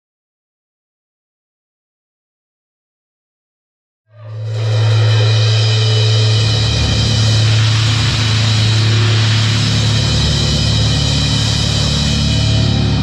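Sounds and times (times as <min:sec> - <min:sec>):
distorted guitar: 0:04.1 - 0:13.0
drums: 0:04.1 - 0:13.0
loud low droning note: 0:04.1 - 0:13.0.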